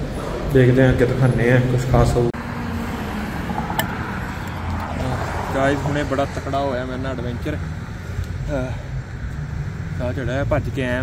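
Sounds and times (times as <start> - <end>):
low rumble of street noise: 0.0 - 11.0.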